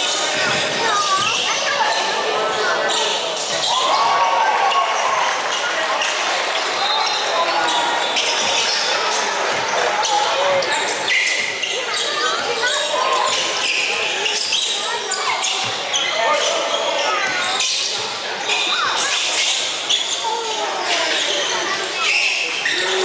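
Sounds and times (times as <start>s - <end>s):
sneakers squeaking: 0.0s - 23.0s.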